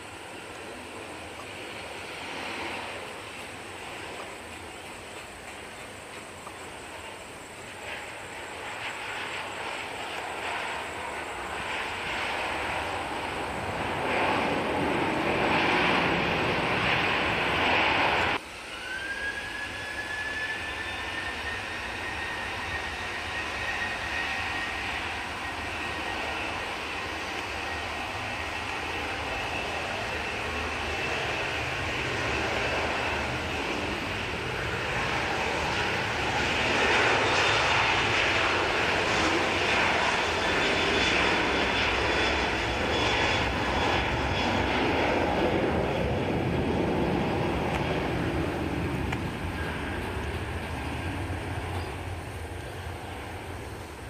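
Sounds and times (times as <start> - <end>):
jet airliner noise: 0.0 - 54.0.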